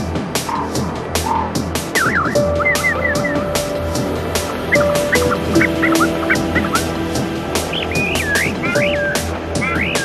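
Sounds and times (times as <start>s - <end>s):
psytrance beat with bass: 0.0s - 10.0s
held synth notes: 1.8s - 10.0s
warbling synth squiggles: 2.0s - 10.0s.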